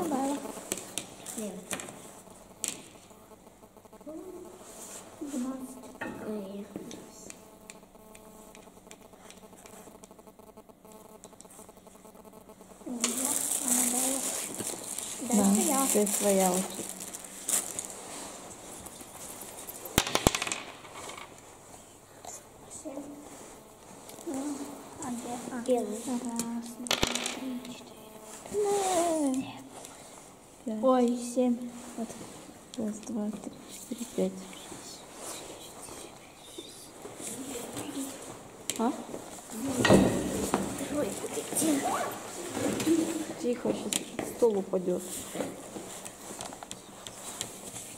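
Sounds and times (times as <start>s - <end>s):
dice clattering on wooden table: 20.0s - 21.3s, 26.9s - 27.4s.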